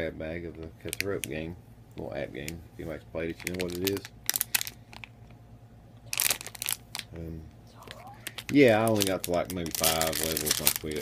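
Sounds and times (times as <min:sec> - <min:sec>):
plastic package crinkling: 0:00.8 - 0:01.4, 0:03.3 - 0:05.4, 0:06.1 - 0:07.2, 0:07.8 - 0:11.0.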